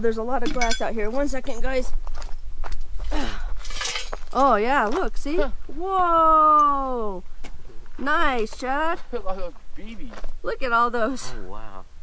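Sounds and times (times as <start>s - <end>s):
footsteps on dry grass and gravel: 1.7s - 3.1s.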